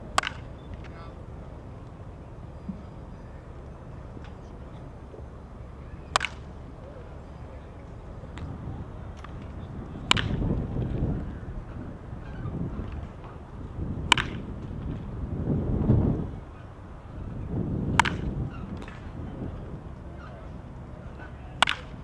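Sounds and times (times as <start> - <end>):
baseball bat cracking ball: 0.1 - 1.0, 6.0 - 6.6, 8.3 - 11.1, 14.0 - 15.0, 17.9 - 19.2, 21.2 - 22.0.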